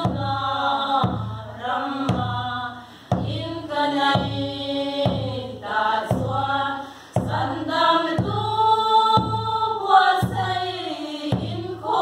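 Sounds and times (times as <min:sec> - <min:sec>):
women singing a hymn: 0:00.0 - 0:12.0.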